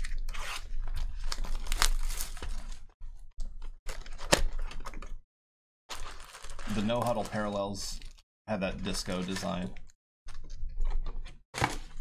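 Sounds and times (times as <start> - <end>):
plastic wrapping tearing and crinkling: 0.0 - 2.9, 5.9 - 8.2.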